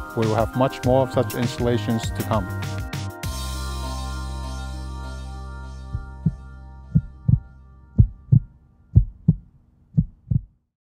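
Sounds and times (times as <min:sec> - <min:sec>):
background music chord: 0:00.0 - 0:09.0
heartbeat thumps: 0:05.9 - 0:10.5.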